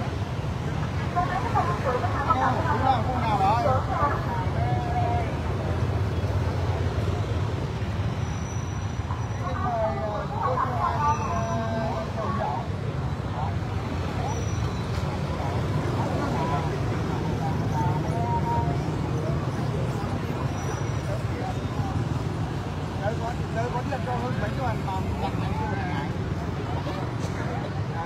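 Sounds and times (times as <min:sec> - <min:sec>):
crowd chatter: 0:00.0 - 0:28.0
motorbike traffic rumble: 0:00.0 - 0:28.0.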